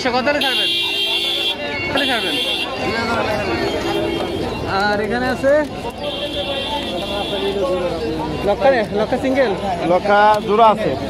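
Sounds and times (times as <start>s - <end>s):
crowd voices: 0.0s - 11.0s
vehicle horn blast: 0.3s - 4.7s, 6.0s - 7.7s.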